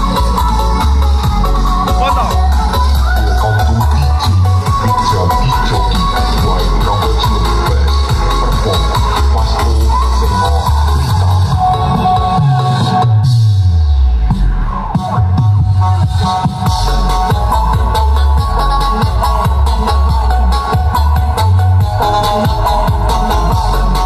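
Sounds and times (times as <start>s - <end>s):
loud electronic dance music: 0.0s - 24.0s.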